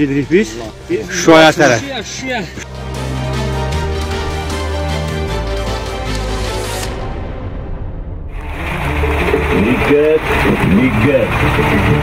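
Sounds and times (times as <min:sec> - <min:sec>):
background music: 0:00.0 - 0:12.0
truck engine rumble: 0:08.3 - 0:12.0.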